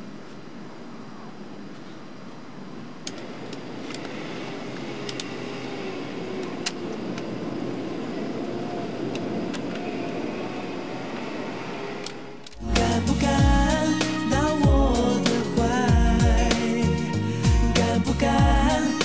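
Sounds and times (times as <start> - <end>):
steady background noise: 0.0 - 13.8.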